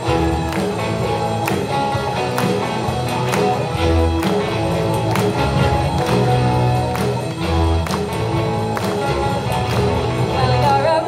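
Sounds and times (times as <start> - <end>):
distorted electric guitars: 0.0 - 11.0
rock band playing: 0.0 - 11.0.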